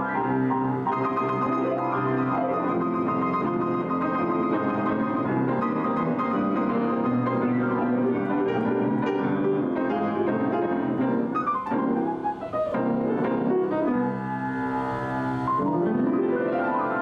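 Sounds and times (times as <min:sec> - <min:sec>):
piano duet: 0:00.0 - 0:17.0.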